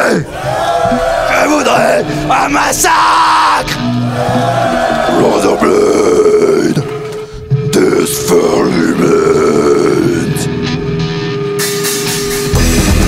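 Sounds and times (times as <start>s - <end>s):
guttural growled vocals: 5.0s - 10.5s.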